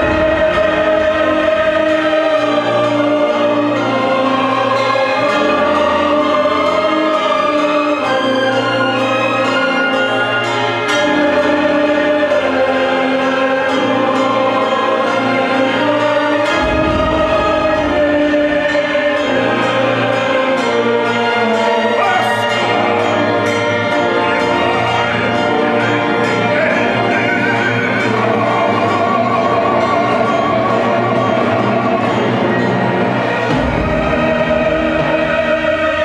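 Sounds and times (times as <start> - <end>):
mixed choir singing: 0.0 - 36.0
symphony orchestra: 0.0 - 36.0
male operatic singing: 21.5 - 23.5, 26.2 - 32.3
symphony orchestra playing chords: 21.8 - 28.4.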